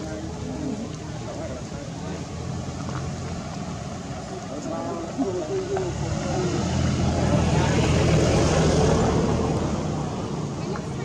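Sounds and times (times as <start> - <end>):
passing vehicle engine: 0.0 - 11.0.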